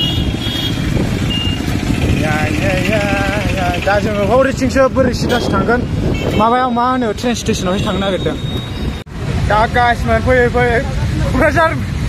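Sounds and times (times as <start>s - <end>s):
street traffic: 0.0s - 12.0s
wind rumble on microphone: 0.7s - 6.6s
man talking: 9.4s - 11.9s.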